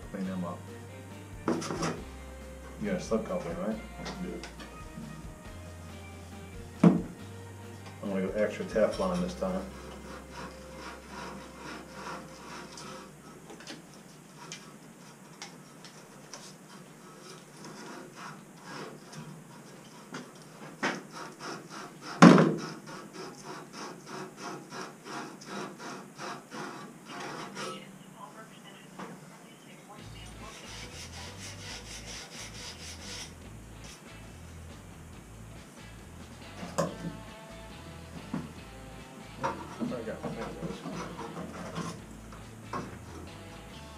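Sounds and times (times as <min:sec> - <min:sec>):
tape rubbing on pipe threads: 0:01.5 - 0:02.1, 0:08.7 - 0:27.9, 0:30.1 - 0:34.2, 0:39.4 - 0:43.4.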